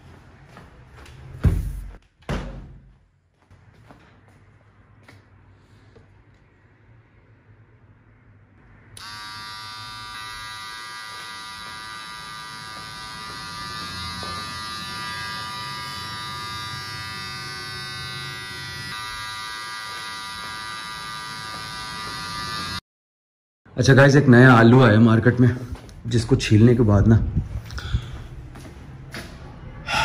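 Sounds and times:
electric beard trimmer buzzing: 9.0 - 22.8.

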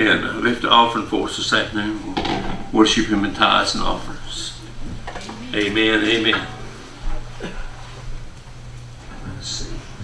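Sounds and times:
man speaking: 5.4 - 6.7.

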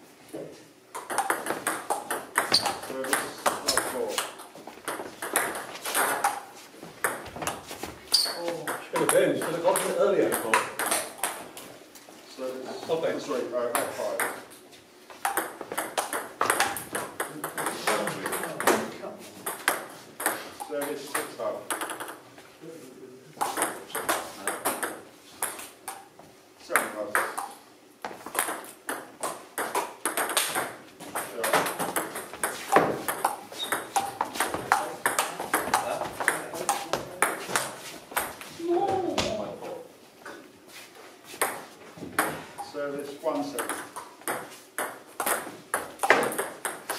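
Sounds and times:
ball bouncing on table: 1.0 - 6.4, 8.2 - 11.4, 15.2 - 20.4, 21.1 - 22.2, 26.8 - 39.4, 41.4 - 42.5, 43.6 - 46.9
ball clicking off bats: 27.1 - 38.3.

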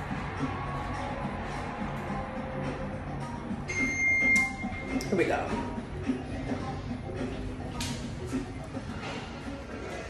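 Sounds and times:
background music: 0.0 - 10.0
elevator signal beep: 3.7 - 5.0.

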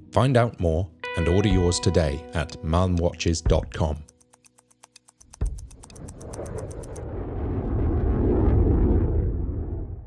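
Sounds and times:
mechanical watch ticking: 2.8 - 7.0.

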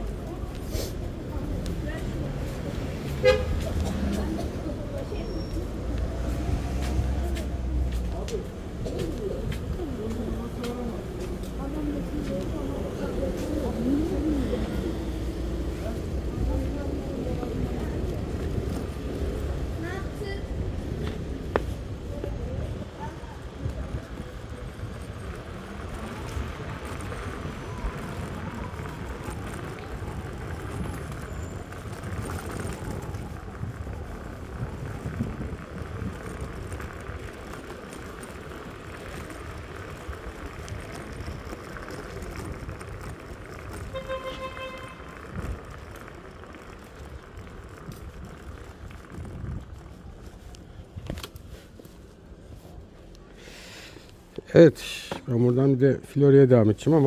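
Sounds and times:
scooter tyres rumbling on bricks: 0.0 - 55.4.

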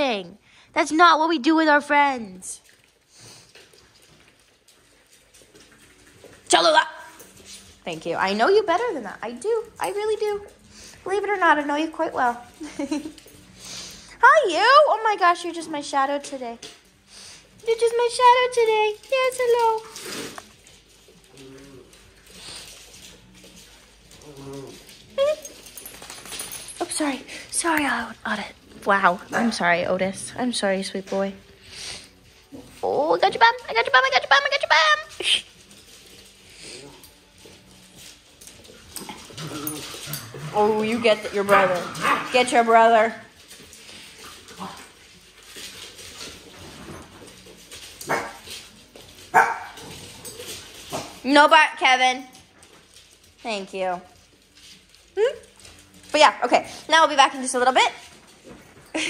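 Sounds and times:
dog grumbling: 21.3 - 22.0, 24.2 - 25.0, 39.0 - 42.3
dog barking: 48.1 - 48.4, 49.3 - 49.8.

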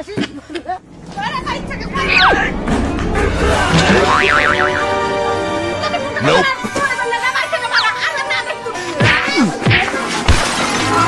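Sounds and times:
music with sustained notes: 0.8 - 9.0
cartoon boing sound effect: 3.8 - 5.0.

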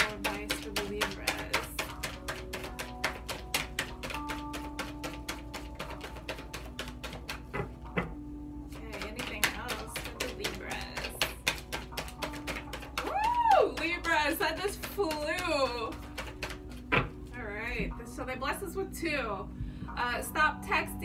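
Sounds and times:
cards being shuffled: 0.0 - 8.1, 8.7 - 17.4
soft background music: 0.0 - 21.0.

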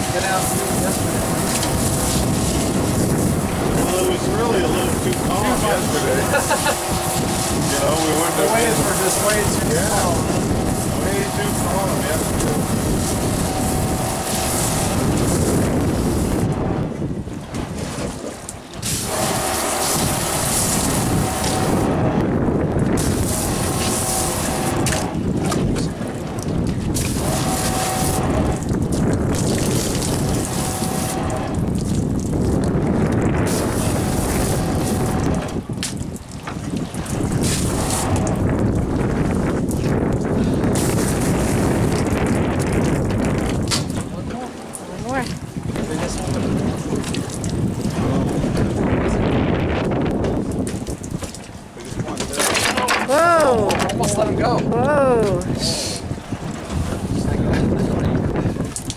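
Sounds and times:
steady hum: 0.0 - 17.3, 18.7 - 36.3, 36.9 - 50.2
water splashing: 0.0 - 58.9
wind buffeting microphone: 0.0 - 58.9.

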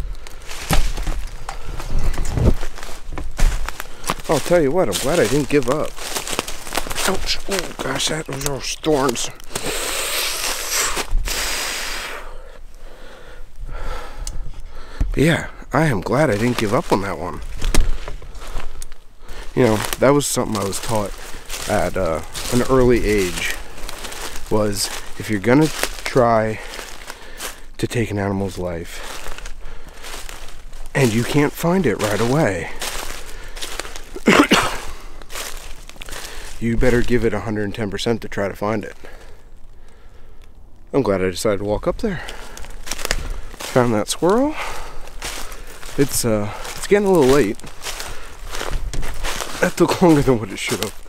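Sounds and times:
footsteps crunching through dry leaves: 0.0 - 12.1, 15.8 - 37.8, 42.1 - 51.0
person breathing hard: 9.4 - 15.2, 17.6 - 19.6, 26.6 - 27.7, 29.0 - 30.3, 33.2 - 34.0, 36.1 - 36.6, 39.0 - 40.4, 42.2 - 43.6, 44.5 - 45.8, 47.9 - 48.8.

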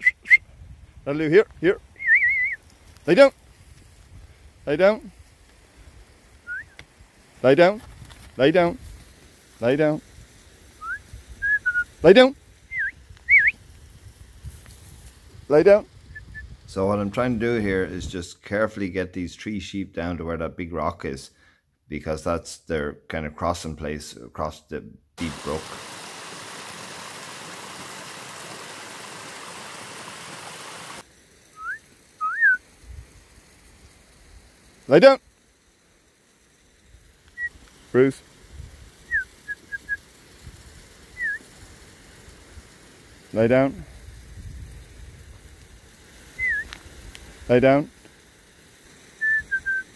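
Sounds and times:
person whistling commands: 0.0 - 0.4, 2.0 - 2.6, 6.5 - 6.8, 10.8 - 11.9, 12.7 - 13.5, 31.6 - 32.6, 49.2 - 49.9.

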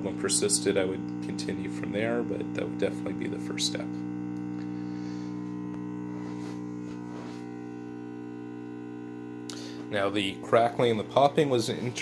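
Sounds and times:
mains buzz through speakers: 0.0 - 12.0.

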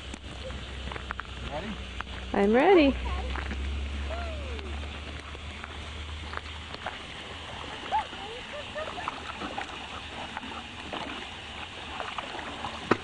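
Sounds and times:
fish splashing at water surface: 3.0 - 13.0.

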